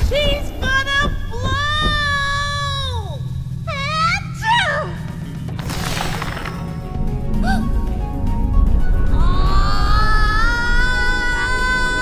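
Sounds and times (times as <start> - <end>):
low music underscore: 0.0 - 12.0.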